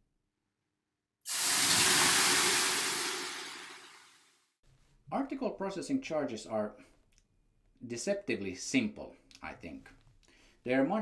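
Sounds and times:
water hissing on hot sauna stones: 1.3 - 4.1.

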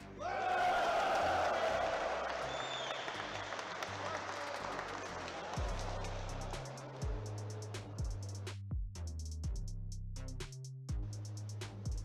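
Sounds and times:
crowd voices and applause: 0.0 - 8.3
background music: 0.0 - 12.0.

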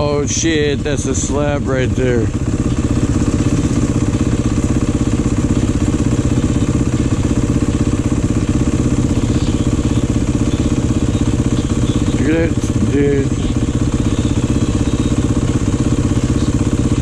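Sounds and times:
dirt bike engine idling: 0.0 - 17.0.

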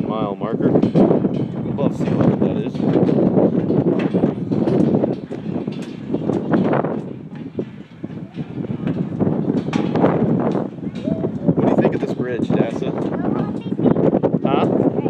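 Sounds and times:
footsteps on bridge deck: 0.7 - 15.0.

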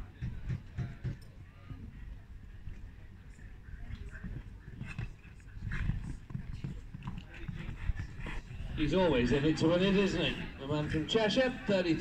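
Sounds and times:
faint voices: 0.0 - 12.0
horse hoofbeats on sand: 3.8 - 9.9.

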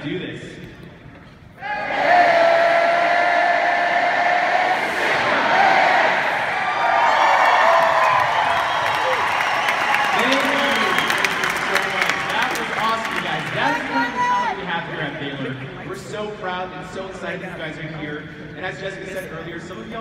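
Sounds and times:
arena crowd cheering: 1.6 - 16.0.

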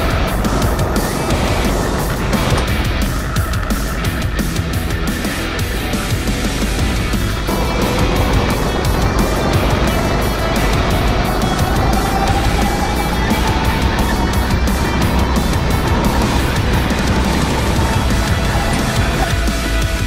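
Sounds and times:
background music with beat: 0.0 - 20.0
go-kart engine accelerating: 0.0 - 20.0.

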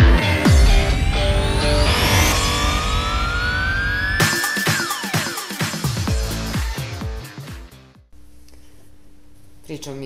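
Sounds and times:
rising synthesizer sweep: 0.0 - 6.6
electronic music with steady bass: 0.0 - 8.0.

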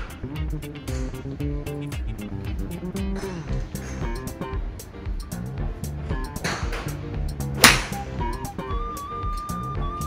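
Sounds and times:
background guitar music: 0.0 - 10.0
golf club striking ball: 7.6 - 8.1.

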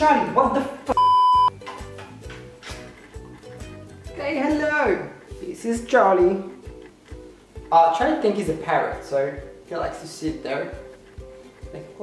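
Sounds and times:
soft background music: 0.0 - 12.0
censor bleep: 0.9 - 1.6.

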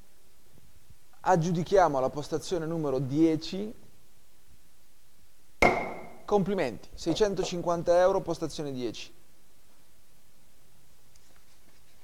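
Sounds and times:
gavel knock: 5.6 - 6.2.

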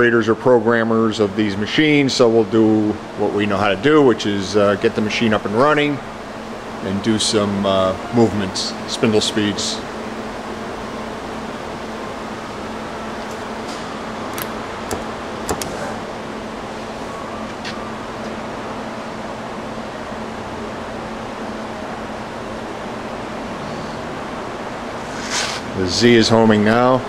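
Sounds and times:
machining center humming: 0.0 - 27.0.

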